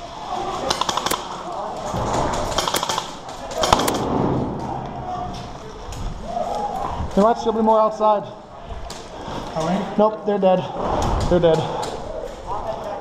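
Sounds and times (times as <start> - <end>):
airsoft rifle firing: 0.6 - 1.4, 2.2 - 4.6.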